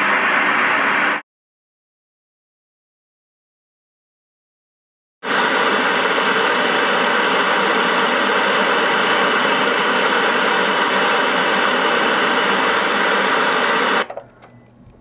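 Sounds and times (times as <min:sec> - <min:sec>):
loud static hiss: 0:00.0 - 0:01.2, 0:05.2 - 0:14.1.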